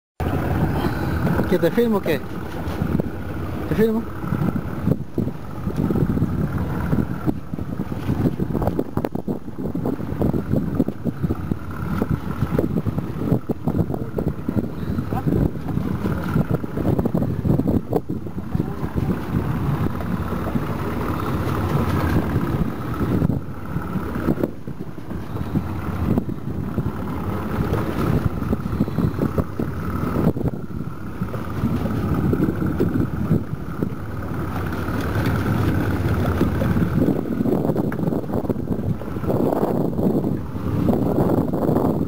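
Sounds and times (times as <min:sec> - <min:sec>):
wind buffeting microphone: 0:00.2 - 0:42.0.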